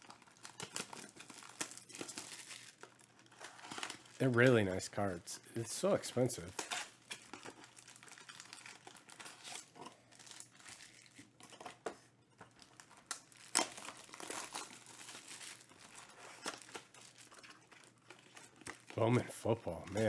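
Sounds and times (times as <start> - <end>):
plastic wrap crinkling and tearing: 0.0 - 20.0.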